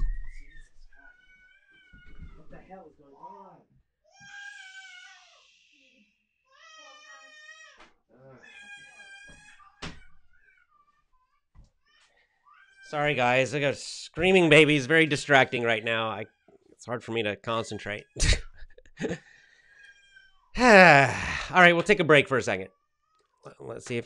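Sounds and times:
baby screaming: 0:04.1 - 0:05.8, 0:06.5 - 0:07.8
person speaking: 0:20.6 - 0:22.5.

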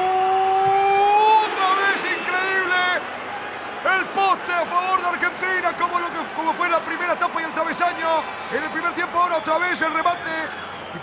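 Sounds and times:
sports commentator shouting excitedly: 0:00.0 - 0:03.1, 0:03.8 - 0:10.5.

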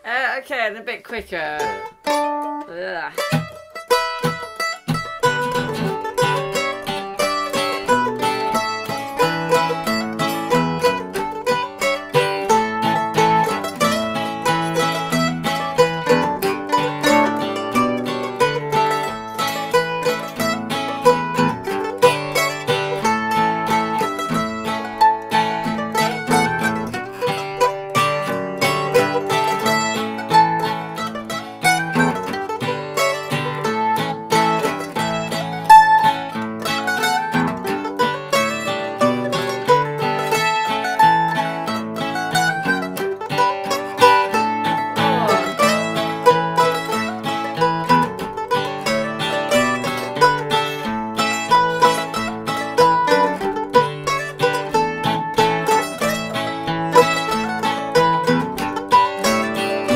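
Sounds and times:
acoustic guitar: 0:00.0 - 0:59.9
mandolin: 0:00.0 - 0:59.9.

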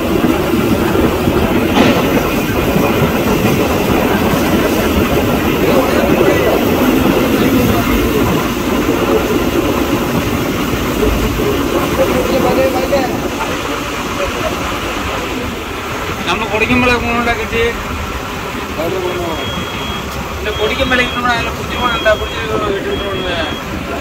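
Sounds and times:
boat engine rumbling: 0:00.0 - 0:24.0
sea wash: 0:00.0 - 0:24.0
wind: 0:00.0 - 0:24.0.

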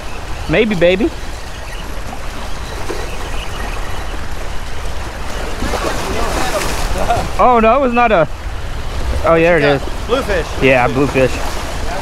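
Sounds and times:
small waves splashing against boulders: 0:00.6 - 0:07.6
wind rumble on microphone: 0:01.2 - 0:12.0.

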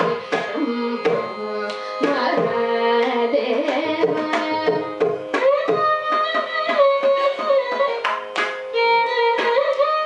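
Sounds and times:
mridangam drum strokes: 0:00.0 - 0:10.0
violin melody: 0:00.0 - 0:10.0.

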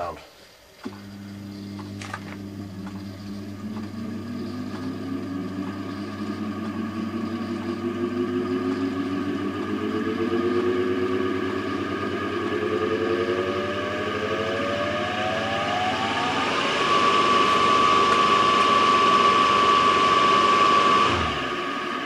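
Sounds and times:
electric motor whine: 0:00.8 - 0:22.0.

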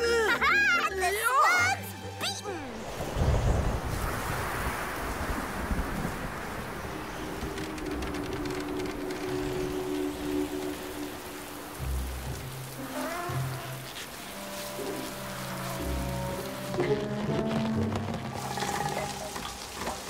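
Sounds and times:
soft background music: 0:00.0 - 0:03.8, 0:06.7 - 0:20.0
steady rain falling: 0:02.7 - 0:20.0.

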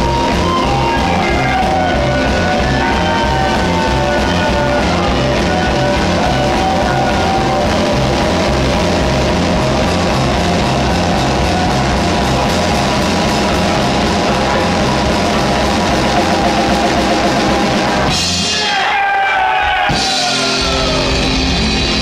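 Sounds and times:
electric guitar: 0:00.0 - 0:18.5
drum kit beat: 0:00.0 - 0:22.0.

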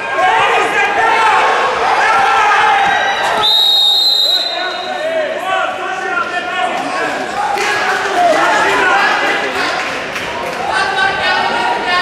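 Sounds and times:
referee's whistle blast: 0:03.3 - 0:05.1.

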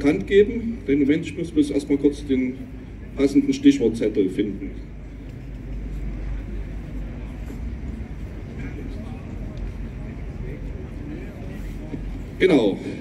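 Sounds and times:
faint crowd voices: 0:00.0 - 0:13.0
low rumble of town square: 0:00.0 - 0:13.0.

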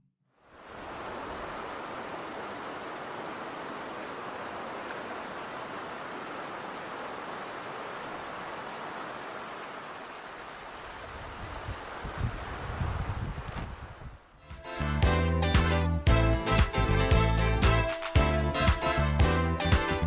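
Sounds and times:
creek running over rocks: 0:00.5 - 0:13.0.

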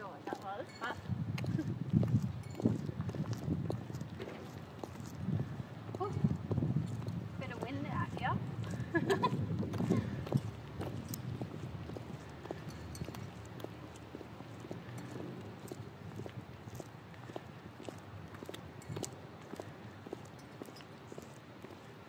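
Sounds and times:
high heels clicking on concrete: 0:00.0 - 0:22.0.

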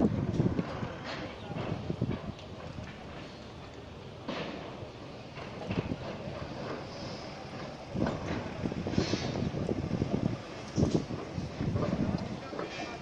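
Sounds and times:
wind buffeting microphone: 0:00.0 - 0:13.0.

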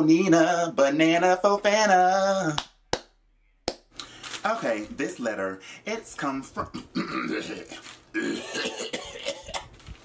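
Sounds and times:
person coughing: 0:06.6 - 0:09.7.

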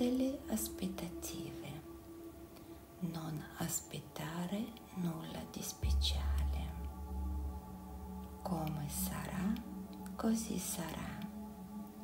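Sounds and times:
deep low drone: 0:00.0 - 0:12.0
meditation music: 0:00.0 - 0:12.0.

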